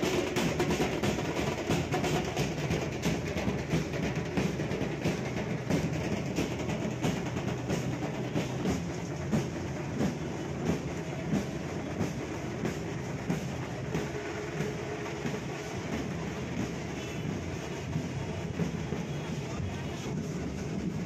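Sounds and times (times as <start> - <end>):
crowd hubbub: 0.0 - 21.0
procession drums beating: 0.0 - 21.0.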